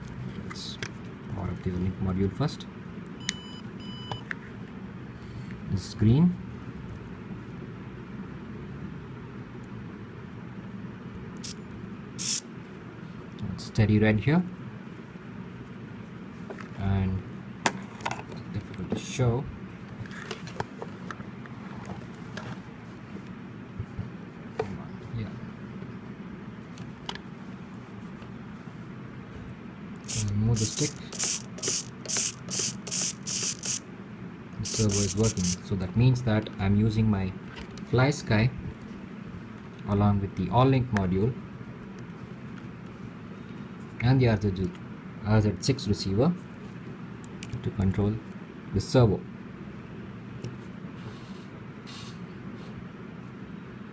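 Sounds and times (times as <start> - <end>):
low background hum: 0.0 - 53.9
servo whirring in bursts: 12.2 - 12.4, 30.0 - 33.9, 34.6 - 35.7.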